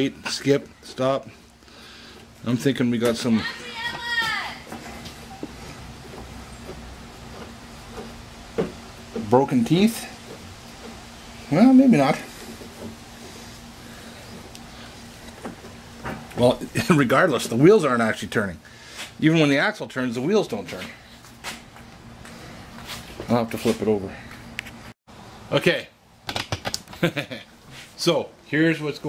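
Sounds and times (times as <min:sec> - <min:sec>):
steady low hum: 0:00.0 - 0:26.3
man laughing: 0:16.5 - 0:17.3, 0:26.9 - 0:27.6.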